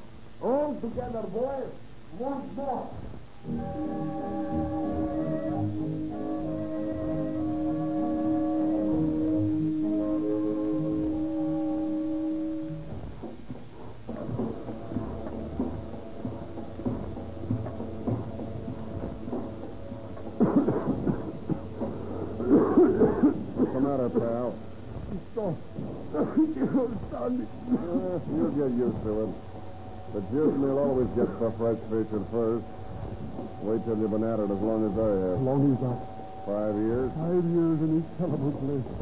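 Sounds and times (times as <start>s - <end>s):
wind and string ensemble chords: 3.4s - 12.9s.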